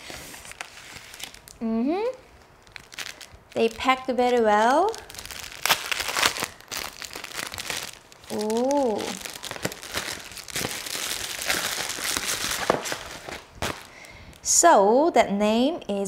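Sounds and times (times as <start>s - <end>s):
packaging crinkling and rustling: 0.0s - 1.6s, 2.2s - 14.4s
woman humming: 1.6s - 2.2s, 8.3s - 9.2s.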